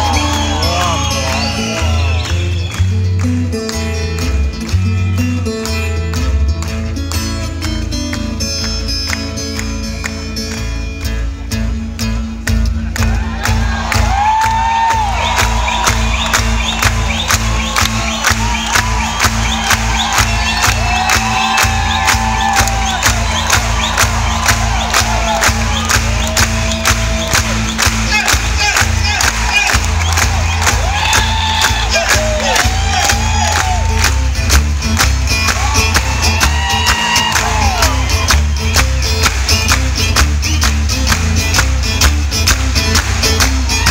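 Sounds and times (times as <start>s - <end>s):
crowd whooping and cheering: 0.0s - 3.4s, 12.8s - 40.2s, 42.6s - 43.9s
twelve-string guitar playing: 0.0s - 13.0s.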